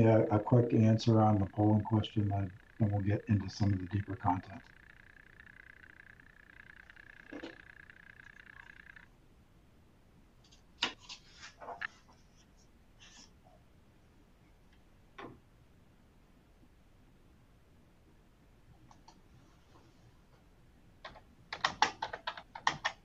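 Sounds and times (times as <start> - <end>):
faint fluttering steady tone: 0.0 - 23.0.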